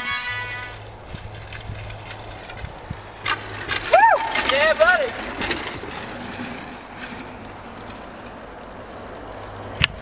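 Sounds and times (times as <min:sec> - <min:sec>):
outdoor rushing noise: 0:00.0 - 0:10.0.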